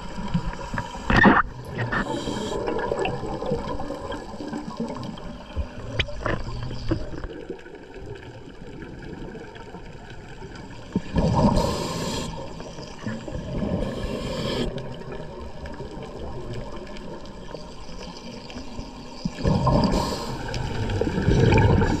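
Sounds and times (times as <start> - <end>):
diver's regulator exhaling: 0.5 - 3.3, 11.2 - 12.6, 13.5 - 14.9, 19.4 - 22.0
gurgling bubble bursts: 1.1 - 17.1, 19.3 - 22.0.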